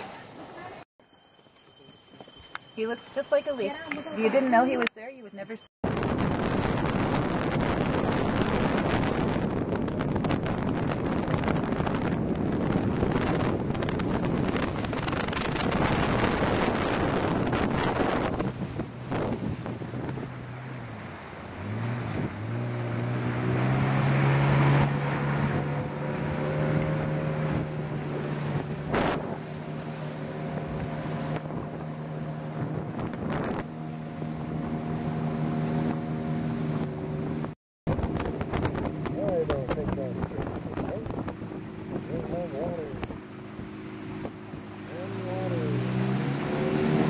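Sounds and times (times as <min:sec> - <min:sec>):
water rushing: 0:02.6 - 0:47.0
outboard motor running: 0:05.8 - 0:47.0
wind on microphone: 0:05.8 - 0:47.0.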